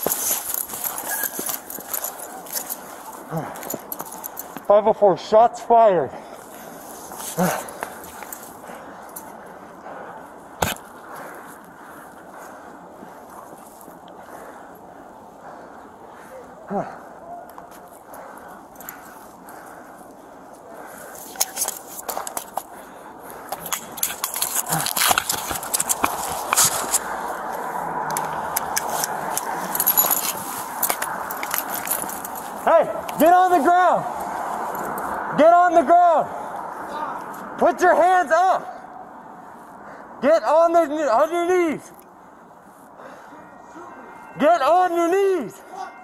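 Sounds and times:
clicks and clothing rustling: 0.0s - 4.7s, 21.0s - 35.1s
steady background noise: 0.0s - 46.0s.

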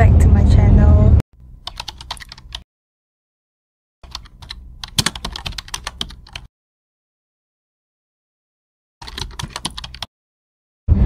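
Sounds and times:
computer keyboard typing: 1.6s - 2.6s, 4.0s - 6.5s, 9.0s - 10.1s.

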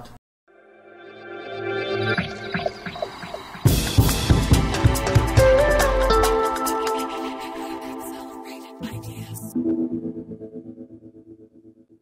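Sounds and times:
music held pulsing chord: 0.5s - 11.4s.

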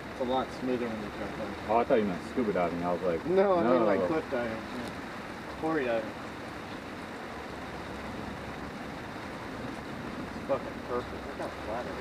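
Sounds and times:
light rain hissing: 0.0s - 12.0s.

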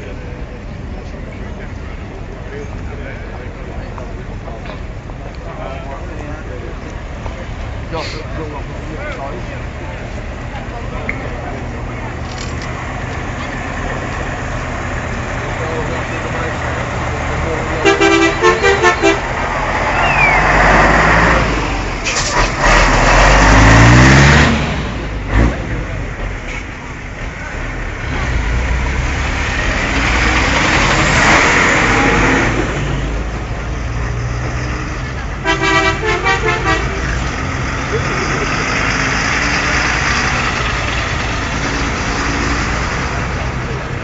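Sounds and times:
crowd voices: 0.0s - 22.6s, 23.9s - 44.0s
heavy truck engines: 0.0s - 44.0s
horn toots: 17.8s - 19.3s, 35.4s - 37.3s.

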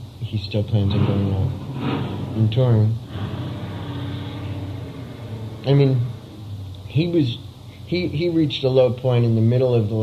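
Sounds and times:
faint hum: 0.2s - 10.0s
low background rumble: 0.7s - 8.8s.

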